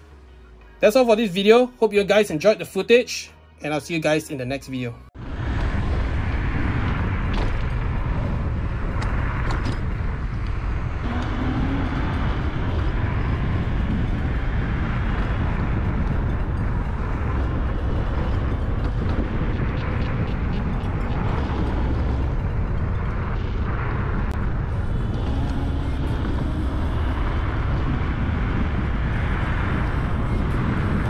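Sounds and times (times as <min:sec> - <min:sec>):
road noise: 0:00.0 - 0:31.0
wind buffeting microphone: 0:05.2 - 0:31.0.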